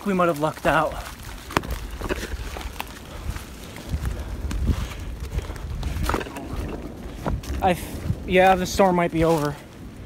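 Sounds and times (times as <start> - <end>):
footsteps on leaves and twigs: 0.0 - 10.0
low microphone rumble: 0.7 - 10.0.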